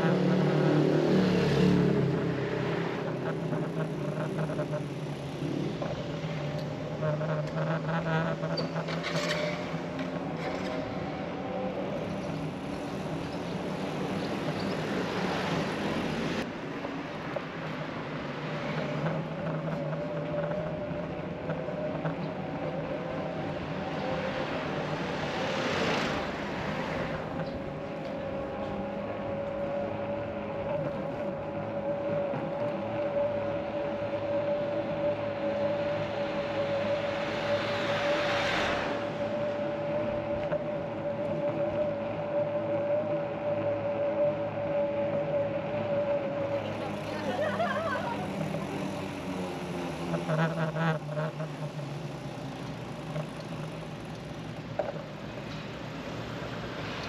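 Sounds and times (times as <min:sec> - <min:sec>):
road and wind noise: 0:00.0 - 0:57.0
electric bicycle motor whine: 0:02.2 - 0:16.5, 0:17.6 - 0:57.0.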